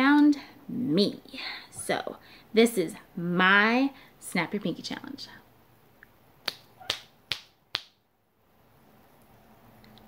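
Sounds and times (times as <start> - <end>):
finger snaps: 6.0 - 8.0.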